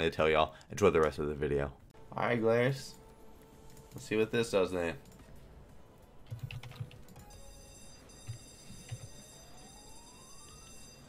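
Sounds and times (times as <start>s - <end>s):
faint high chiming tones: 7.1s - 11.0s.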